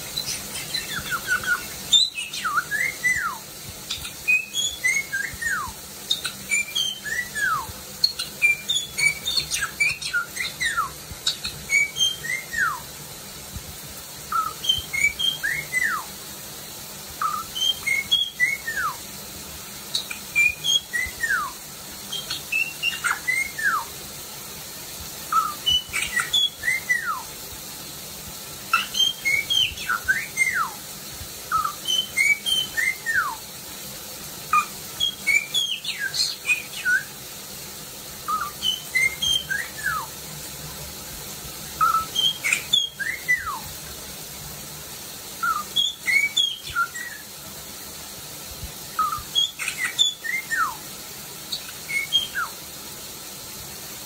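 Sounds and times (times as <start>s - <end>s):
parrot chirping and whistling: 0.0s - 13.0s, 14.3s - 19.1s, 19.8s - 24.0s, 25.2s - 27.4s, 28.6s - 33.6s, 34.5s - 37.2s, 38.2s - 40.2s, 41.7s - 43.8s, 45.2s - 47.4s, 48.8s - 52.7s.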